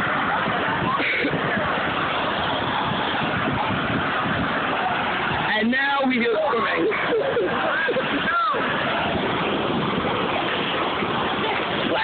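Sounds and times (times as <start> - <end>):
fountain water jet rushing: 0.0 - 12.0.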